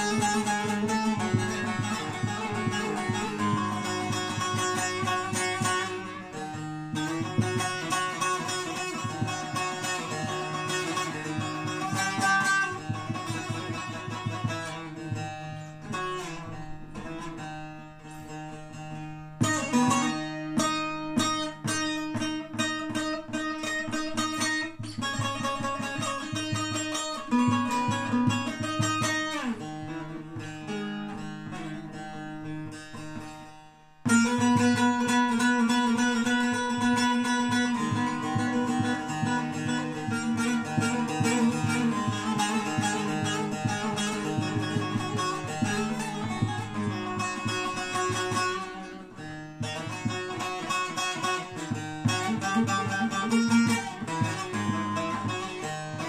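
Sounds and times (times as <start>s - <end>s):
long-necked lute strummed and picked: 0.0s - 56.0s.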